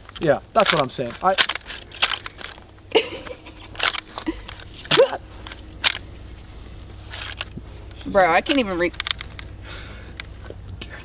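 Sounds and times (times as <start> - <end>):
metallic clicks of rifle action: 0.0 - 2.6, 3.7 - 6.1, 8.5 - 9.5.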